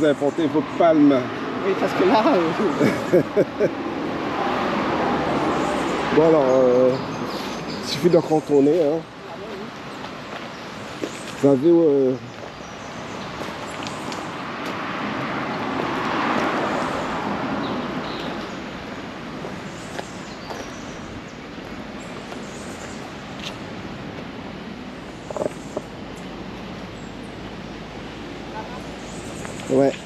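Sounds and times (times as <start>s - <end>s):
vehicle passing by: 0.0s - 8.7s, 12.8s - 21.2s
outdoor background noise: 0.0s - 30.0s.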